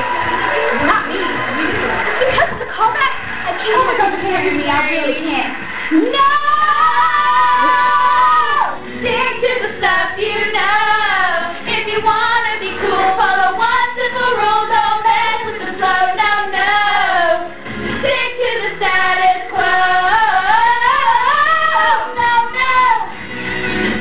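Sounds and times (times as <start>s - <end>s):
recorded backing track: 0.0s - 24.0s
girls singing: 5.9s - 23.1s.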